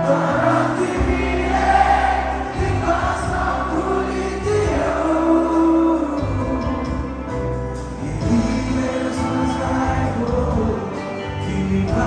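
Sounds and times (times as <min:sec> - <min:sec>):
bass guitar: 0:00.0 - 0:12.0
drums: 0:00.0 - 0:12.0
keyboard: 0:00.0 - 0:12.0
person singing: 0:00.0 - 0:12.0.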